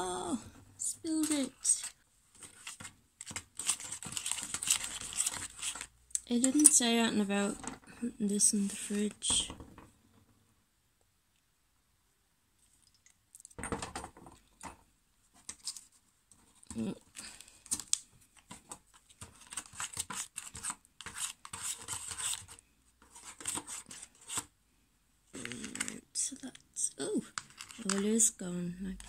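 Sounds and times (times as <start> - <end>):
plastic spoon scraping tray: 1.1 - 6.8, 19.2 - 24.5.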